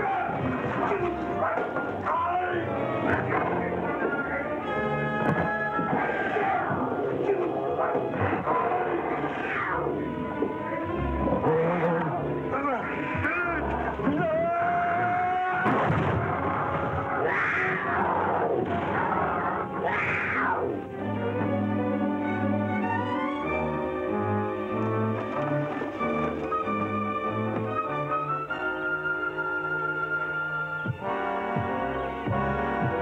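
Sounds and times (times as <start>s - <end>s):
wordless cries and shouts: 0.0s - 21.0s
dramatic orchestral music: 0.0s - 33.0s.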